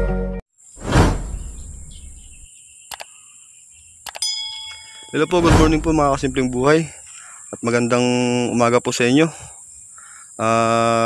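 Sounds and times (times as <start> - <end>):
faint outdoor chirping: 0.6 - 11.0
whoosh transition effect: 0.8 - 2.4, 5.3 - 6.7
ringing bell chime: 4.2 - 6.6.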